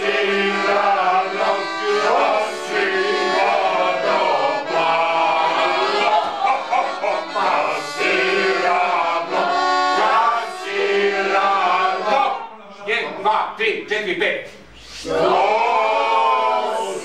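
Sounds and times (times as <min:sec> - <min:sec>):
men singing in unison: 0:00.0 - 0:12.5
piano accordion playing: 0:00.0 - 0:13.4.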